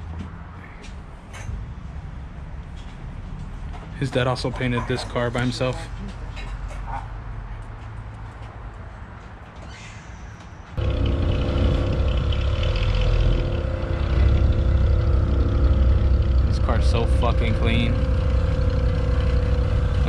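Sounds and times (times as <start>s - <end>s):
car engine idling: 10.8s - 20.0s.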